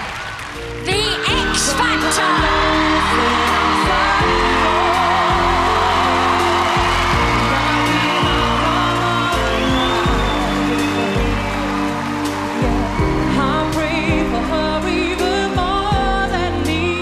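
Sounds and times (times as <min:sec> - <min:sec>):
backing track: 0:00.6 - 0:17.0.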